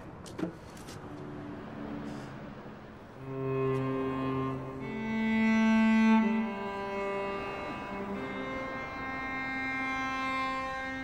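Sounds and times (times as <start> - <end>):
cello bowed note: 3.2 - 11.0.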